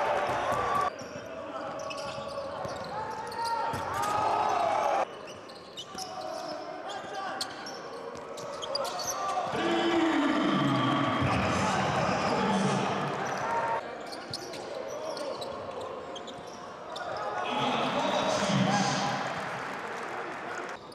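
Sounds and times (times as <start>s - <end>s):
voices and crowd noise: 0.0s - 20.9s
sneakers squeaking on hardwood: 1.8s - 3.9s.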